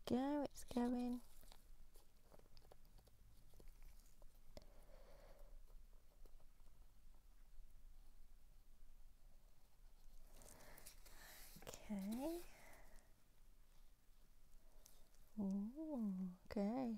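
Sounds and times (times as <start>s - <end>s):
faint ticks and rustles: 0.0s - 8.1s, 9.6s - 13.2s.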